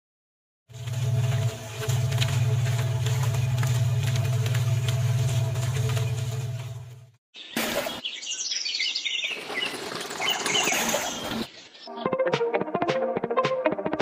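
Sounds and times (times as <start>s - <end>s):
birds chirping: 7.4s - 12.2s.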